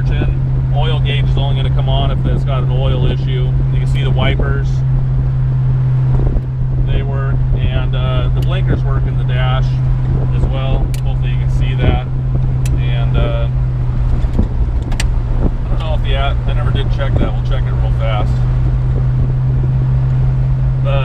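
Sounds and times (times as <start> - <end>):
car engine and road drone: 0.0 - 21.0.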